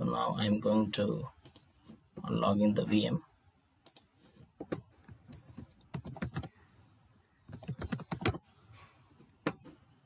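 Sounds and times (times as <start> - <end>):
computer keyboard typing: 5.3 - 6.5, 7.5 - 8.4.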